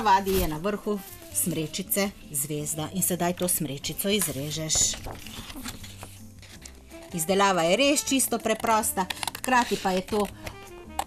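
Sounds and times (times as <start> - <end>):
quiet background music: 0.0 - 11.0
scissors cutting card: 3.9 - 11.0.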